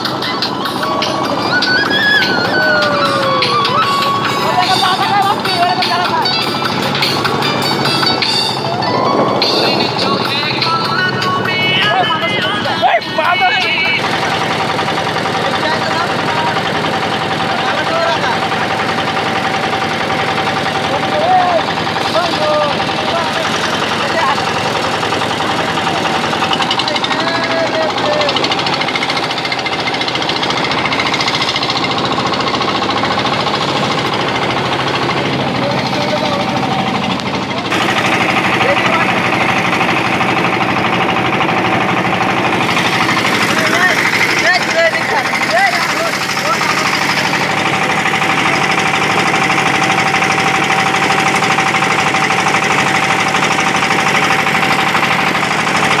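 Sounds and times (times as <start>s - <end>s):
boat engine running: 0.0s - 56.0s.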